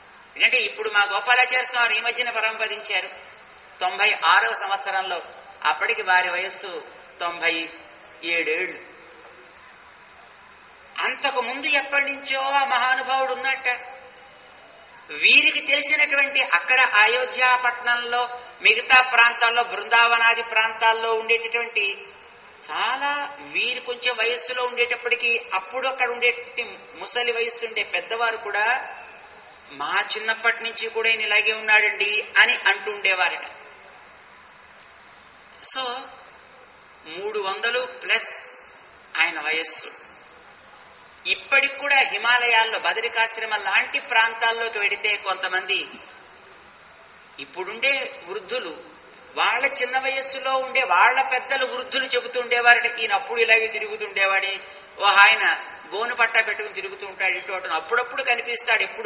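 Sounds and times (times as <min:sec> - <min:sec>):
background hiss: 0:00.0 - 0:59.0
man speaking: 0:15.1 - 0:22.0, 0:29.7 - 0:33.5.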